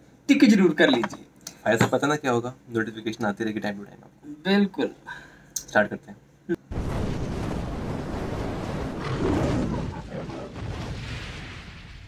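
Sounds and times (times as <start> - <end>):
deep noisy explosion blast: 6.7 - 12.0.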